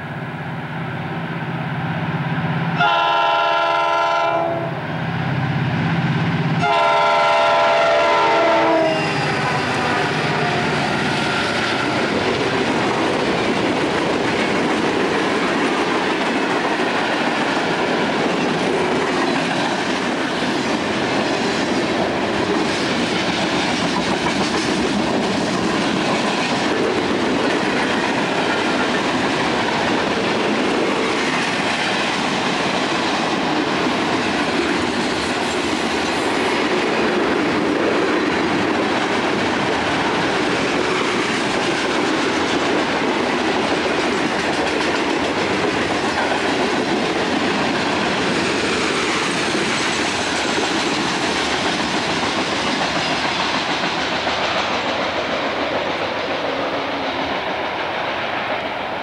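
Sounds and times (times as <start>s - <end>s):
steel wheels rumbling on rail: 0.0s - 59.0s
locomotive air horn blasts: 2.8s - 4.8s, 6.6s - 10.7s.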